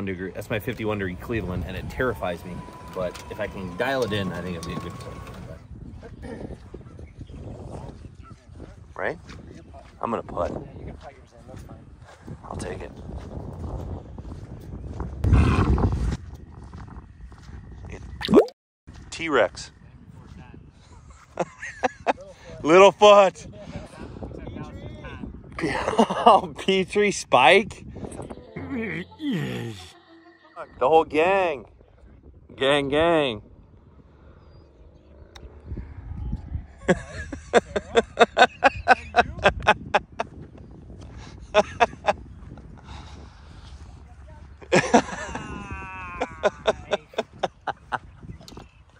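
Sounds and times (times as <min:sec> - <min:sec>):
wind rumbling on microphone: 0:00.0 - 0:29.1, 0:30.6 - 0:48.9
burst of laughter: 0:44.7 - 0:47.5.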